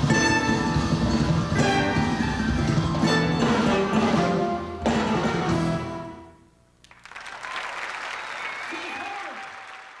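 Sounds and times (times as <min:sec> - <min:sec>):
audience applause: 0:06.8 - 0:10.0.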